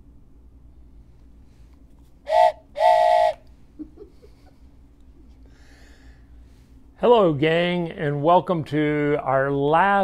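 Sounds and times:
train whistle blasts: 0:02.3 - 0:03.5.

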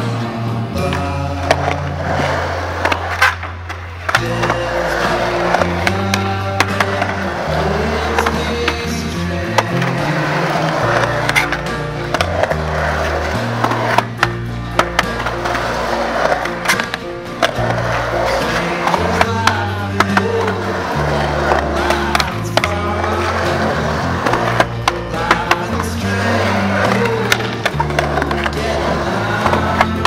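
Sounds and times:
background music with bass line: 0:00.0 - 0:30.0
skateboard wheels rolling on concrete: 0:00.0 - 0:30.0
skateboard clacking on ramp: 0:00.8 - 0:30.0.

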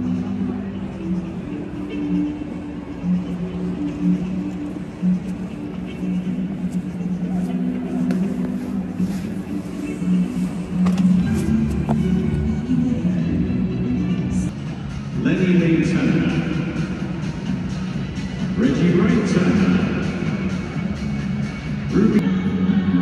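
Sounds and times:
music over stadium loudspeakers: 0:00.0 - 0:23.0.

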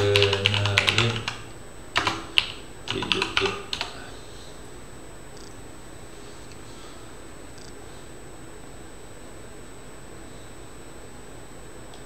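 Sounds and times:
typing on computer keyboard: 0:00.0 - 0:01.4, 0:02.0 - 0:04.0.

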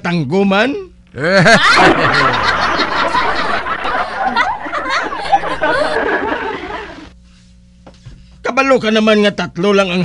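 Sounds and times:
person laughing: 0:01.2 - 0:07.1
crowd laughing: 0:01.4 - 0:07.2.

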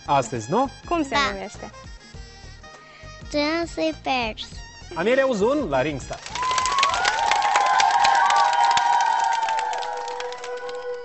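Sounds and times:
audience cheering and applauding: 0:06.2 - 0:11.0
children shouting: 0:06.4 - 0:11.0.

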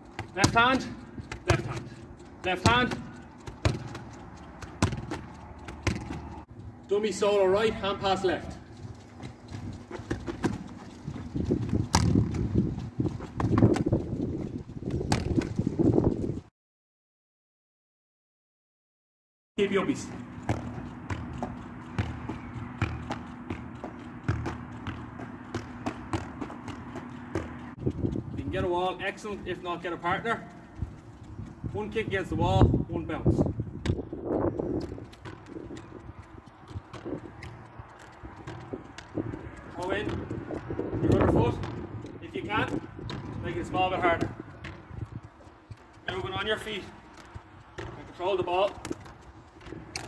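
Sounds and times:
foot thudding on ball: 0:00.1 - 0:06.5, 0:09.0 - 0:15.6, 0:20.4 - 0:28.1, 0:40.0 - 0:41.9, 0:46.8 - 0:50.0
ball knocking against concrete wall: 0:02.6 - 0:06.3, 0:20.4 - 0:27.7.

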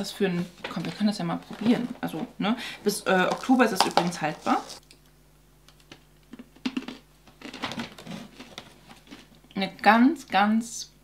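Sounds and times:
person chewing cornflakes: 0:05.8 - 0:09.4.

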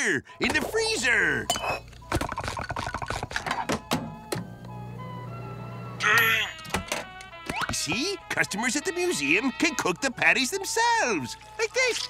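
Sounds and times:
microwave oven humming: 0:03.9 - 0:06.1.

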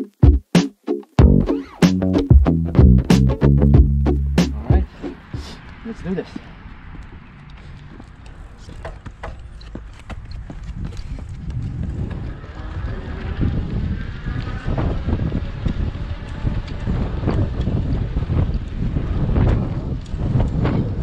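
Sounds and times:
wind buffeting microphone: 0:04.6 - 0:21.0
running shoes slapping pavement: 0:06.3 - 0:21.0.

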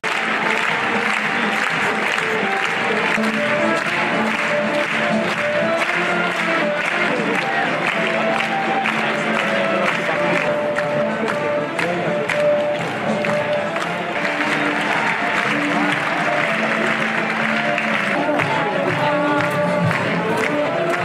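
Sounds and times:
crowd applauding: 0:00.0 - 0:21.0
music of long held notes: 0:00.1 - 0:21.0.

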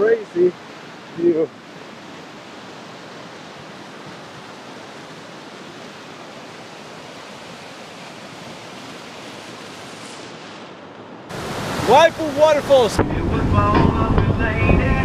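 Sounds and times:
waterfall rushing over rocks: 0:00.0 - 0:15.0.

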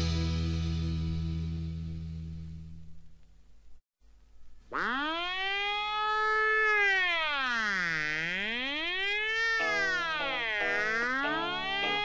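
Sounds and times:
siren wail: 0:04.7 - 0:12.0
song: 0:09.4 - 0:12.0
ringing chord: 0:09.5 - 0:12.0.

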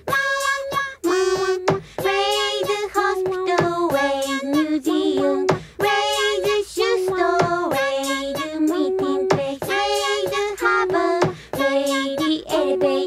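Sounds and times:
high voice singing: 0:01.0 - 0:01.8.

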